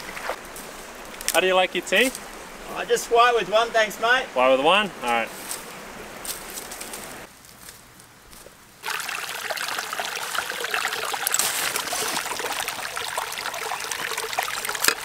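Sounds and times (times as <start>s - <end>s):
stream trickling over rocks: 8.8s - 15.0s.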